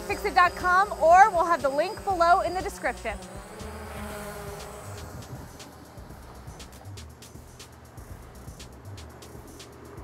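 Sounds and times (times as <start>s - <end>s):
drone propellers buzzing: 0.0s - 10.0s
music with light percussion: 0.0s - 10.0s.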